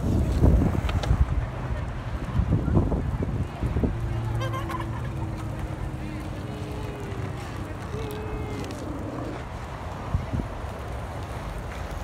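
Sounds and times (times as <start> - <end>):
skateboard wheels rolling on asphalt: 0.0 - 12.0.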